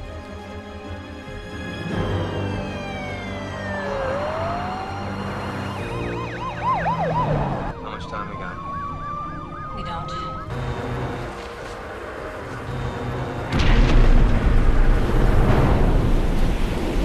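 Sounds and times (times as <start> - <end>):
siren wailing: 1.9 - 11.4
siren yelping: 2.2 - 10.6.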